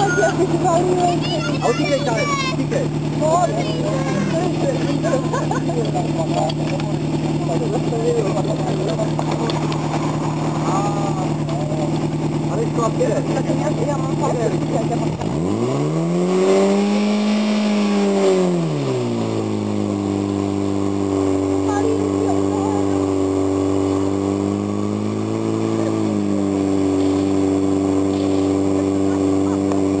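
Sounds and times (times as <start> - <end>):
fire pump engine running: 0.0 - 30.0.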